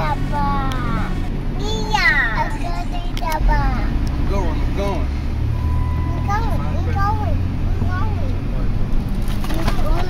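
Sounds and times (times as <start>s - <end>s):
child calling and singing: 0.0s - 1.0s, 1.6s - 4.0s, 6.0s - 8.3s
vehicle low rumble: 0.0s - 10.0s.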